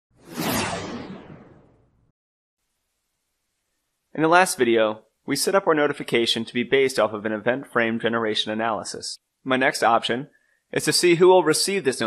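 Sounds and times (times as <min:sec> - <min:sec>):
whoosh with falling pitch: 0:00.2 - 0:01.9.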